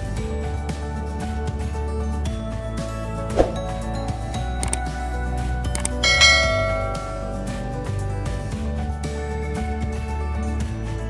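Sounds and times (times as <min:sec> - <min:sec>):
background music: 0:00.0 - 0:11.0
short clicks: 0:04.6 - 0:04.9, 0:05.7 - 0:06.0
notification bell ding: 0:05.9 - 0:07.8.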